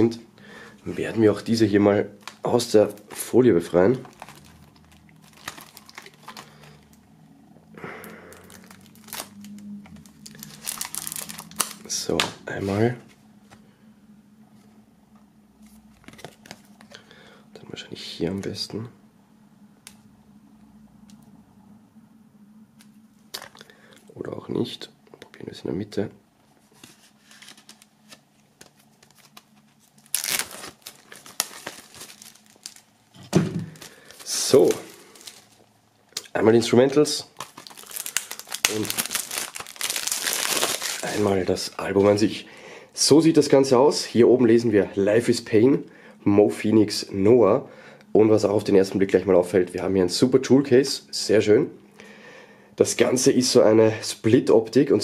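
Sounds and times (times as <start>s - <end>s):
plastic wrap crinkling: 1.0s - 7.2s, 8.3s - 12.2s, 26.7s - 42.4s
knife slitting plastic wrap: 30.1s - 32.9s, 37.4s - 41.3s.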